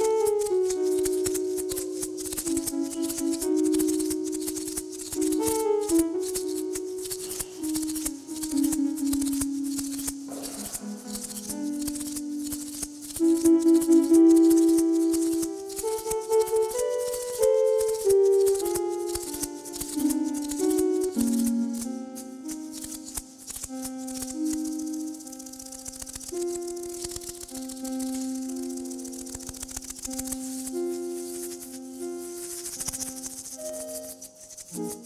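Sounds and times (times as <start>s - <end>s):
hand shaker rattling: 0.0s - 35.0s
held synthesized notes: 0.0s - 35.0s.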